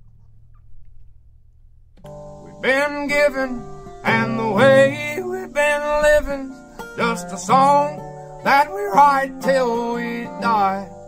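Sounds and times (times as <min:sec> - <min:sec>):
low steady hum: 0:00.0 - 0:08.8.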